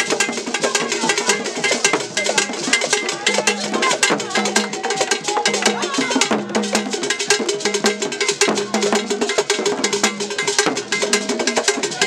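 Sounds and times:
hand drums: 0.0s - 12.0s
stick-beaten drum: 0.0s - 12.0s.

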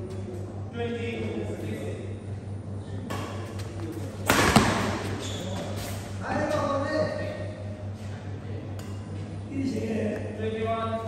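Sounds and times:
steady low hum: 0.0s - 11.0s
racket striking shuttlecock: 3.1s - 5.2s.

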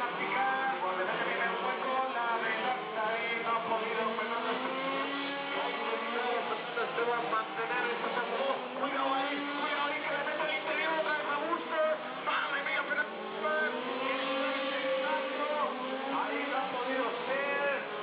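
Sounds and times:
small engines revving: 0.0s - 18.0s
voice over loudspeaker: 0.0s - 18.0s
music over loudspeaker: 6.1s - 13.9s.

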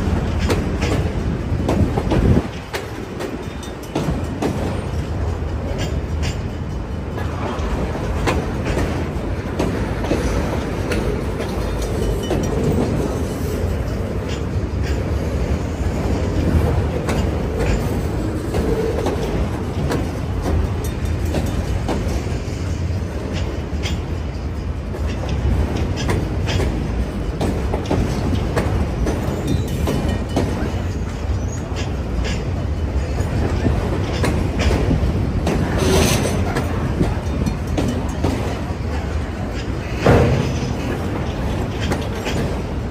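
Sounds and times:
steel wheels rumbling on rail: 0.0s - 42.9s.

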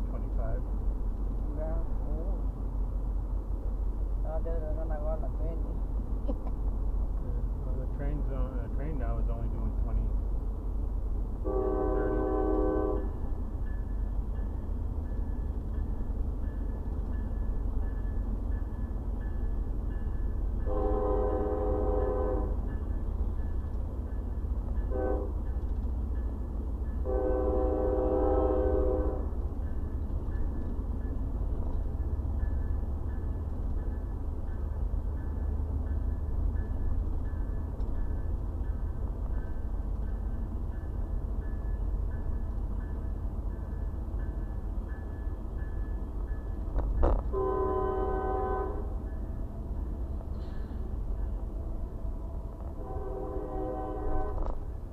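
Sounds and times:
road noise rumble: 0.0s - 54.9s
locomotive horn blasts: 11.4s - 13.2s, 20.6s - 22.6s, 24.9s - 25.4s, 27.0s - 29.3s, 47.3s - 49.0s, 52.7s - 54.6s.

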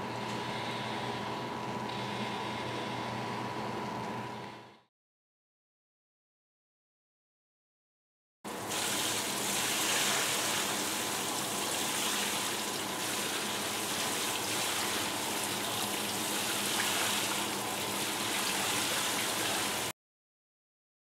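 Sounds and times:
water stream splashing into sink: 8.5s - 19.9s.

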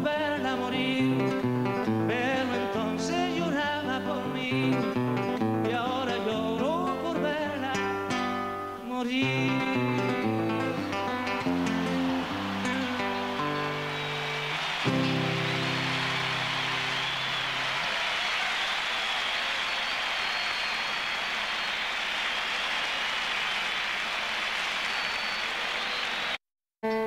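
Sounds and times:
large crowd applauding: 9.7s - 26.4s.

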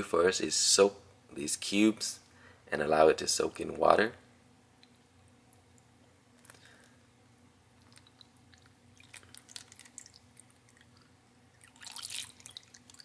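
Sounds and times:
water trickling and dripping: 7.8s - 13.0s.

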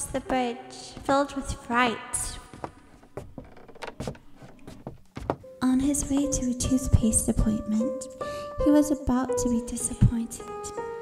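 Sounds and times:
footsteps on wooden planks: 0.0s - 5.5s.

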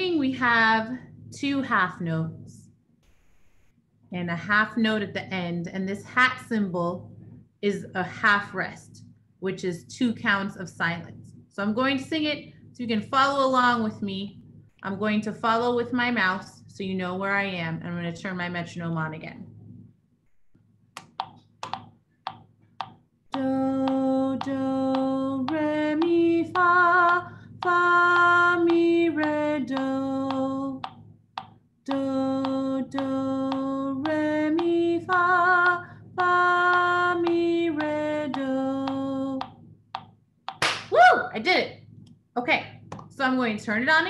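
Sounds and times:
woman singing held notes: 23.3s - 30.9s, 31.9s - 39.4s.

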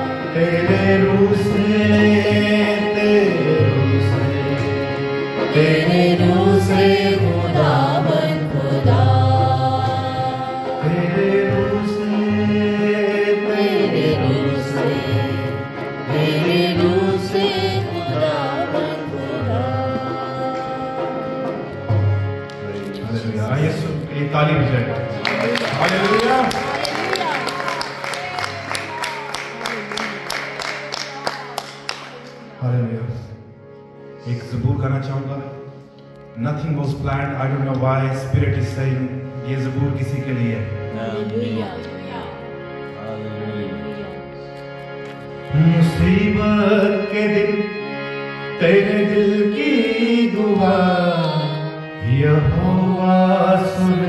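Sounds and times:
harmonium sustained notes: 0.0s - 54.0s
hands clapping: 22.4s - 23.0s, 24.8s - 32.5s
man's voice: 22.8s - 27.3s, 32.4s - 33.5s, 34.1s - 41.7s, 45.5s - 54.0s.

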